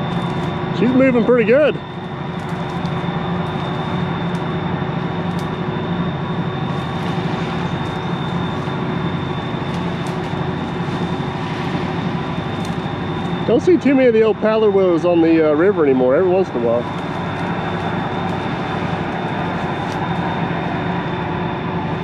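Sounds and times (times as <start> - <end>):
riverboat engines droning: 0.0 - 22.0.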